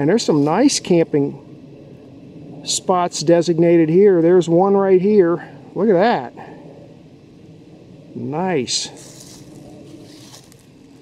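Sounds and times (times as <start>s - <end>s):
footsteps in dry leaves: 8.8s - 11.0s.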